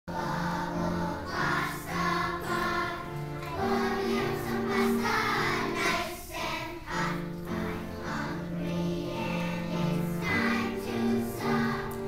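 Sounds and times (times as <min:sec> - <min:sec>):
children's choir singing: 0:00.1 - 0:12.0.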